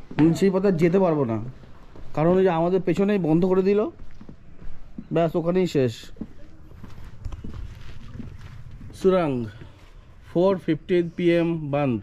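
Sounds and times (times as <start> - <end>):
footsteps on stone path: 0.0 - 10.6.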